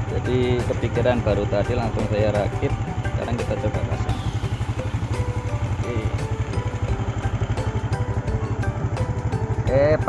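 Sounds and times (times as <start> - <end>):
background music: 0.0 - 10.0
motorcycle engine idling: 0.0 - 10.0.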